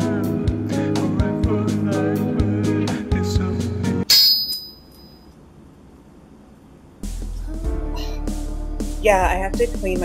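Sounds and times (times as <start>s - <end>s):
music: 0.0s - 4.1s, 7.0s - 10.0s
high metallic ding: 4.1s - 5.3s.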